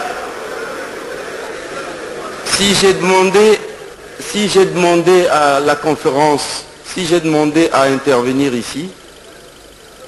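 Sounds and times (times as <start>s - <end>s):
faint voices in a hall: 0.0s - 10.0s.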